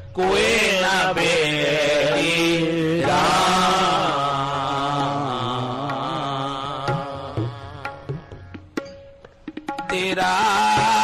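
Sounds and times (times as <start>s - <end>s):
man singing ornamented notes: 0.0s - 8.7s, 9.8s - 11.0s.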